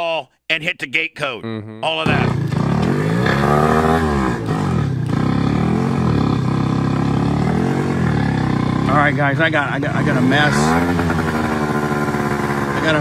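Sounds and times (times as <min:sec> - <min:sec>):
moped engine running rough: 0:02.0 - 0:13.0.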